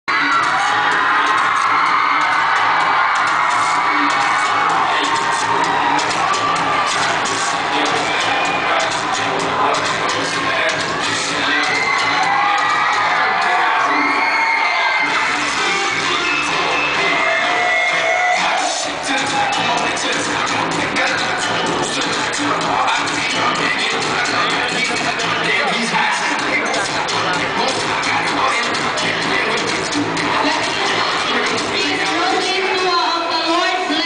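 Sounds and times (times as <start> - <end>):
loud music with steady beat: 0.0 - 34.0
children cheering and shouting: 0.1 - 34.0.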